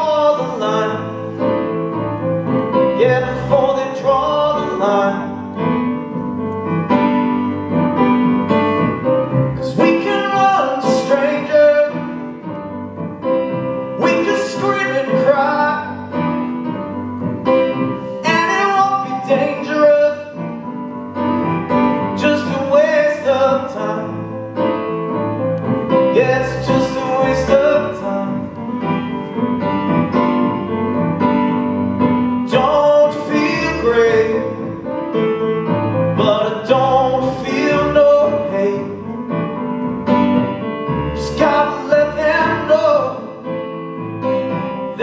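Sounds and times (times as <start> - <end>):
solo piano playing: 0.0 - 45.0.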